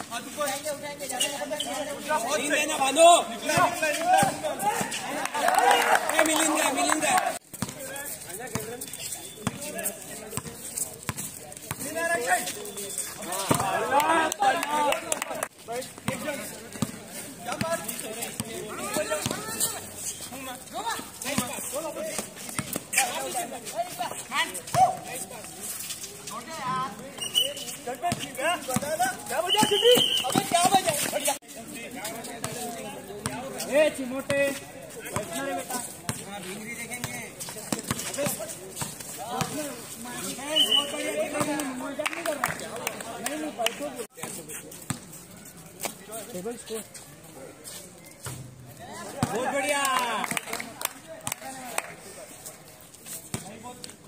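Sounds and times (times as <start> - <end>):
players calling and shouting: 0.0 - 54.0
footfalls on concrete: 3.4 - 27.0, 27.6 - 45.1
basketball bouncing on concrete: 7.5 - 7.8, 13.4 - 13.8, 16.0 - 19.6, 21.3 - 22.9, 28.1 - 31.2, 36.9 - 39.7, 49.2 - 49.5.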